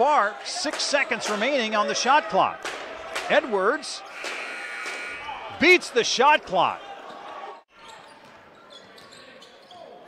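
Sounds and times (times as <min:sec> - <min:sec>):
crowd noise in a large hall: 0:00.0 - 0:10.0.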